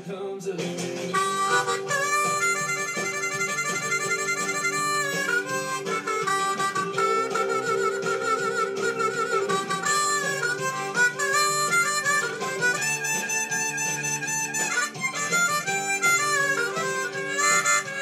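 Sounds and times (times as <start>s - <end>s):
harmonica melody: 1.0s - 18.0s.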